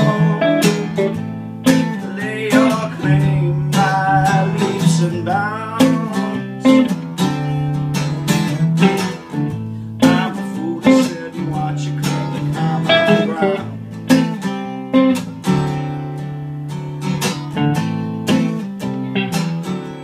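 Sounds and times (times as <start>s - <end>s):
acoustic guitar strumming chords: 0.0s - 20.0s
electric guitar playing: 0.0s - 20.0s.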